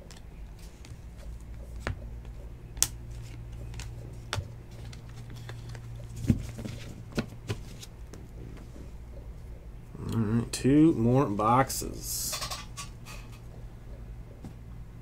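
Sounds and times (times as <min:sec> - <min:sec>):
trading cards handled: 0:00.0 - 0:08.0
steady low hum: 0:00.0 - 0:15.0.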